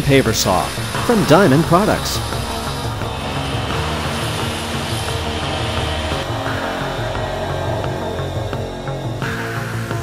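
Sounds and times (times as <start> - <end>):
background music: 0.0 - 10.0
electric saw cutting masonry: 0.0 - 10.0.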